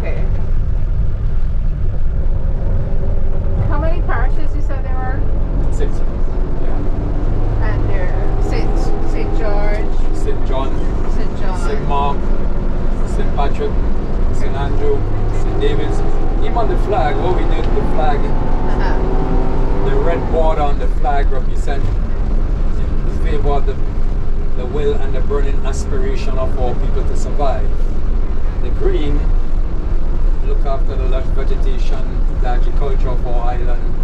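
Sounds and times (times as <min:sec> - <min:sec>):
people talking: 0:00.0 - 0:00.4, 0:03.6 - 0:06.8, 0:07.6 - 0:12.2, 0:13.0 - 0:13.8, 0:14.4 - 0:19.0, 0:19.8 - 0:22.0, 0:22.8 - 0:23.8, 0:24.6 - 0:27.8, 0:28.6 - 0:29.3, 0:30.4 - 0:34.0
minibus engine and road rumble: 0:00.0 - 0:34.0.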